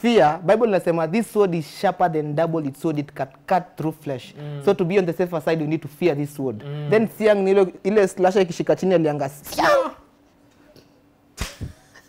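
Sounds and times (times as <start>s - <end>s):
sharp smack: 11.4s - 11.7s.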